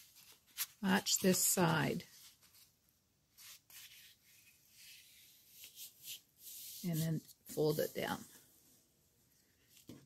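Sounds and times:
paper rustling and rubbing: 0:00.0 - 0:08.4.

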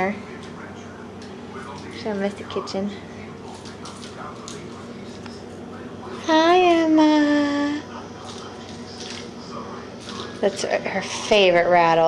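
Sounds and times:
baby chewing on plastic rattle: 0:03.4 - 0:05.4.

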